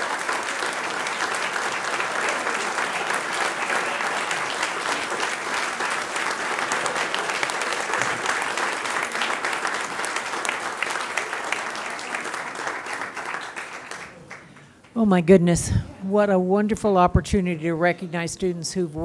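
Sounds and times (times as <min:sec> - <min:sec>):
crowd applauding: 0:00.0 - 0:15.0.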